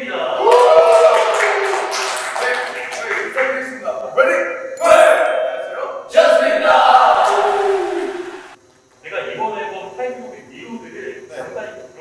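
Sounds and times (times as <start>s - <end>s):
group shouting: 0.3s - 2.1s, 4.8s - 8.6s
people clapping: 0.4s - 3.8s
men shouting in unison: 6.1s - 8.4s.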